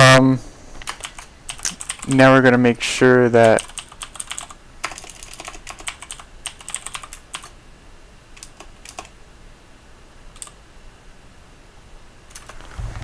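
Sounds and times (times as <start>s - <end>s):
typing on computer keyboard: 0.8s - 2.2s, 3.4s - 7.6s, 8.4s - 9.2s, 10.4s - 10.6s.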